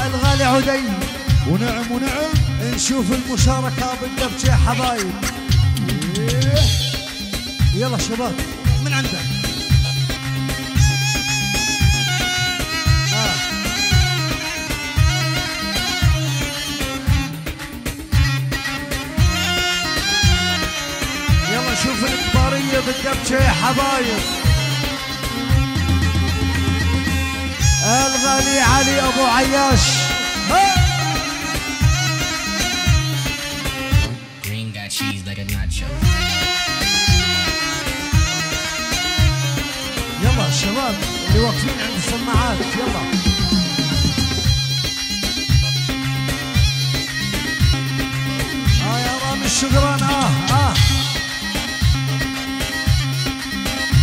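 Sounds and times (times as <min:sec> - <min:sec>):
heavy drum beat: 0:00.0 - 0:34.2, 0:35.8 - 0:54.0
reedy double-pipe melody: 0:00.0 - 0:34.5, 0:35.8 - 0:54.0
bass line: 0:00.0 - 0:54.0.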